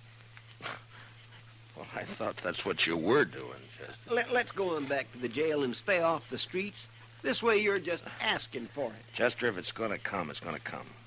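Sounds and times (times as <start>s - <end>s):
steady low hum: 0.0s - 11.0s
man's voice: 1.8s - 3.7s.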